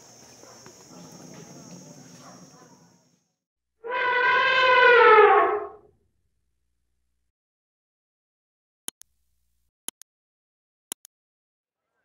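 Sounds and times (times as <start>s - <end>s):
insect drone: 0.0s - 3.4s
elephant trumpet call: 3.8s - 5.8s.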